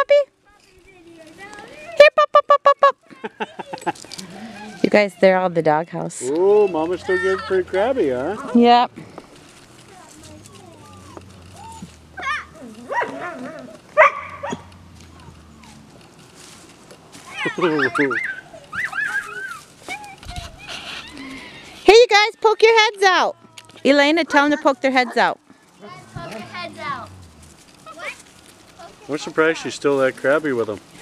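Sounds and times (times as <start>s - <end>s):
dog whining yelp: 10.2s - 15.8s, 17.4s - 21.6s
dog barking sharply: 14.0s - 14.7s.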